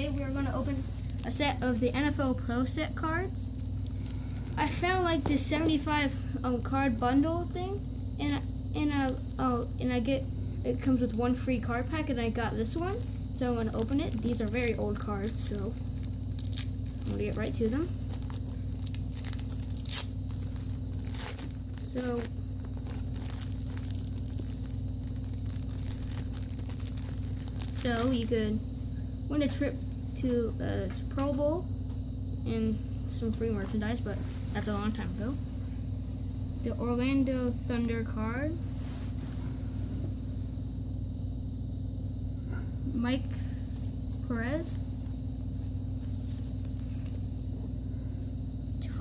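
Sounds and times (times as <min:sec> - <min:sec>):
steady low hum: 0:00.0 - 0:49.0
wrapper tearing and crinkling: 0:12.7 - 0:28.3.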